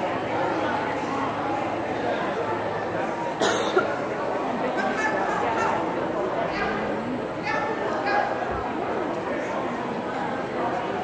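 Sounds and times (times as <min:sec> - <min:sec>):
murmur of voices: 0:00.0 - 0:11.0
person coughing: 0:03.4 - 0:03.8.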